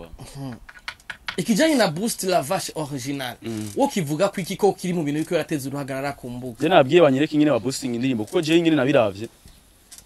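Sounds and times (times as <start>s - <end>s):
man talking: 1.4s - 9.3s.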